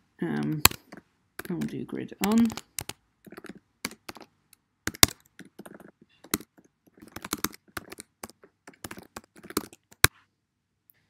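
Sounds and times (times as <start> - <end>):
computer keyboard typing: 0.4 - 4.3, 4.9 - 10.1.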